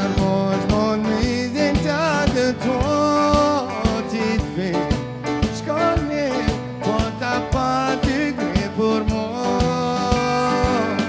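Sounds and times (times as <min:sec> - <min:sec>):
live band playing: 0:00.0 - 0:11.0
man singing into microphone: 0:00.0 - 0:11.0
steady drum beat: 0:00.0 - 0:11.0.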